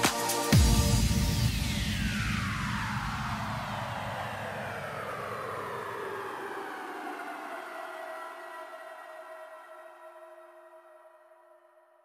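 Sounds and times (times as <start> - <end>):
electronic background music beat: 0.0 - 5.0
electronic whoosh sweeping down: 0.0 - 7.6.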